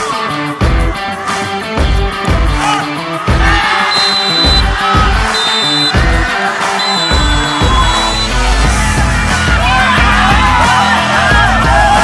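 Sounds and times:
upbeat music with drum beat: 0:00.0 - 0:12.0.

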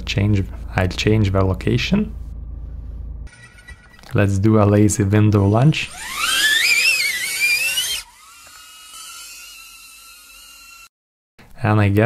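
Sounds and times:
drone motors whining: 0:03.2 - 0:10.9.

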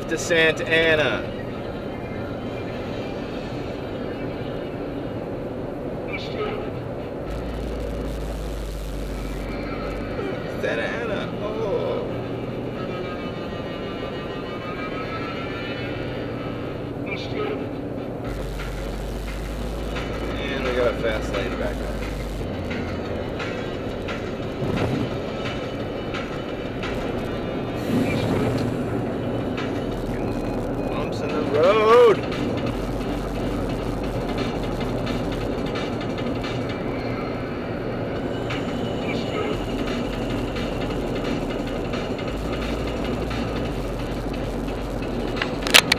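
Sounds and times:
car road and engine noise: 0:00.0 - 0:45.9
wind noise: 0:17.8 - 0:38.9.

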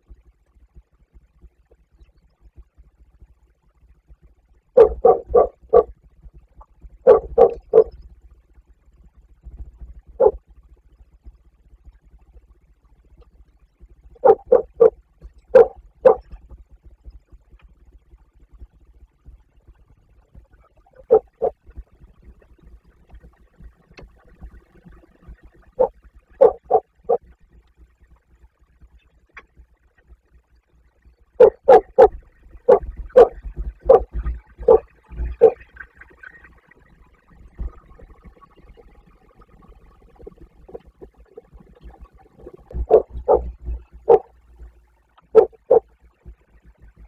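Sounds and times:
short loud animal barks: 0:04.8 - 0:05.9, 0:07.1 - 0:07.9, 0:14.2 - 0:14.9, 0:15.6 - 0:16.2, 0:21.0 - 0:21.6, 0:25.8 - 0:27.2, 0:31.4 - 0:35.6, 0:42.7 - 0:44.3, 0:45.4 - 0:45.8.

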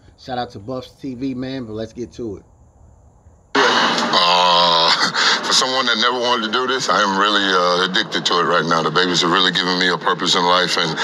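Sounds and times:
man holding a long vowel: 0:03.6 - 0:08.8.

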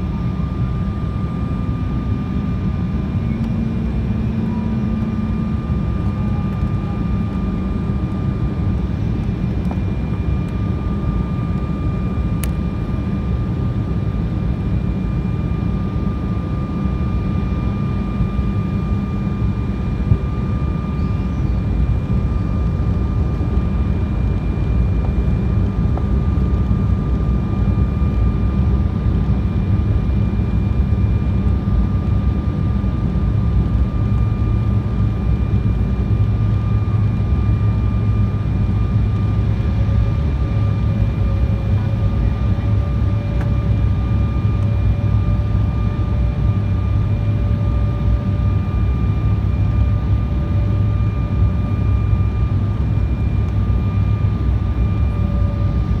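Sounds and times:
jet engine cabin rumble: 0:00.0 - 0:56.0
lower whine: 0:00.0 - 0:56.0
thin steady whine: 0:00.0 - 0:56.0.

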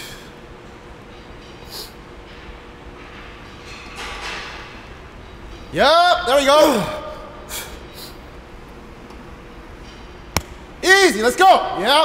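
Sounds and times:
man shouting encouragement: 0:05.8 - 0:07.2, 0:10.8 - 0:12.0.

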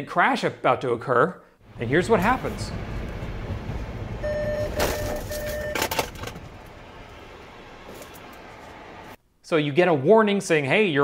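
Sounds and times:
cabin road noise: 0:01.6 - 0:09.2
car warning beeps: 0:04.2 - 0:06.0.

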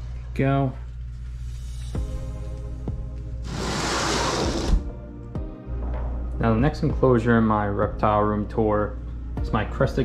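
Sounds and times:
background music: 0:00.0 - 0:10.0
rush of hissing noise: 0:03.4 - 0:04.8.

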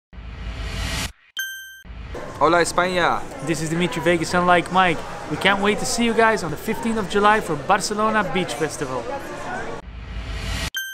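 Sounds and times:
bright ding: 0:01.4 - 0:01.9.

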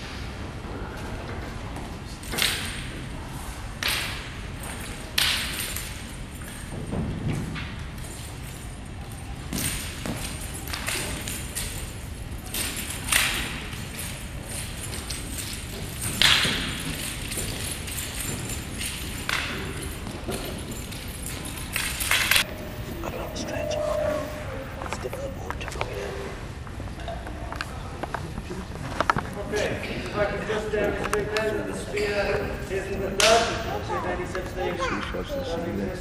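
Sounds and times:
wooden staff clacking: 0:09.5 - 0:25.1.

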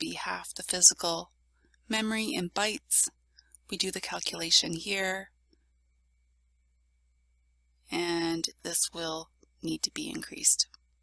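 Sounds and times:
person narrating: 0:00.0 - 0:01.2, 0:01.9 - 0:03.1, 0:03.7 - 0:05.2, 0:07.9 - 0:10.6.

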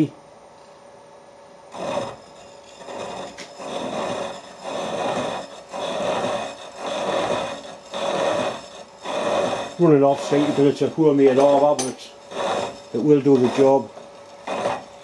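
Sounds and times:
saw rasping through metal: 0:01.7 - 0:15.0.

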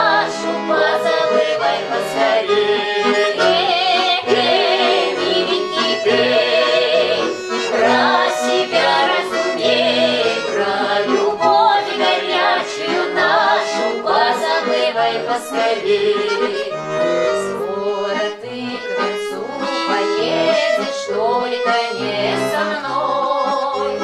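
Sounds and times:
button accordion playing: 0:00.0 - 0:24.0
women singing with vibrato: 0:00.0 - 0:24.0.

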